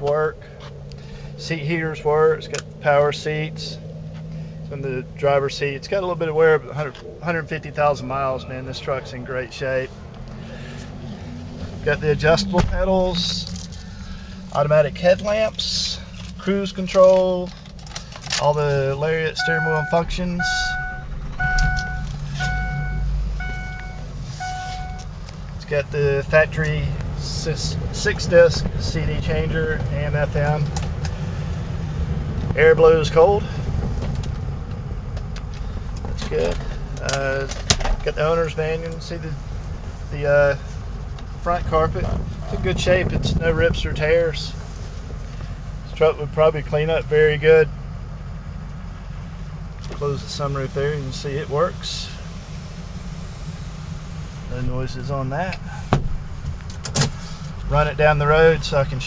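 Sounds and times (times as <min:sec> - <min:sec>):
diesel engine rumbling: 0:00.0 - 0:59.0
dashboard warning chime: 0:19.3 - 0:25.1.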